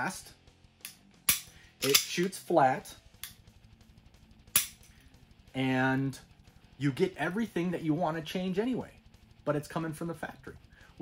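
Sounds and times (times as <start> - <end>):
pistol dry-fire click: 0.8 - 2.1, 4.6 - 4.9.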